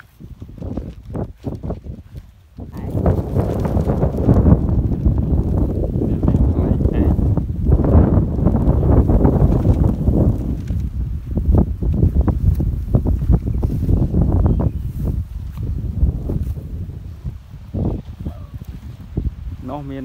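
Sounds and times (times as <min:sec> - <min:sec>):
crackling rustles: 0:00.0 - 0:20.0
wind buffeting microphone: 0:00.0 - 0:20.0.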